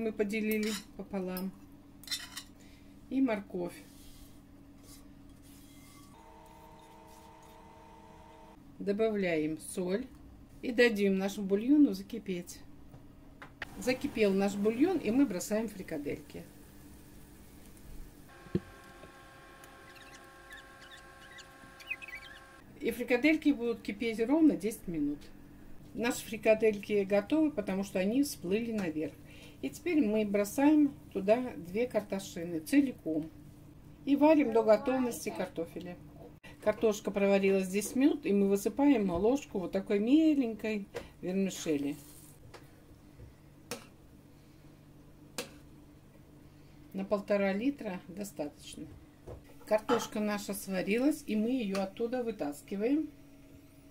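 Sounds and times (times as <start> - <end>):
steady multi-tone hum: 0.0 - 36.6.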